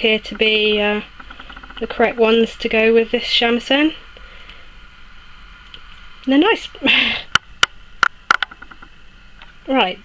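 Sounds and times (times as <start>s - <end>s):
steady hum and hiss: 0.0s - 10.0s.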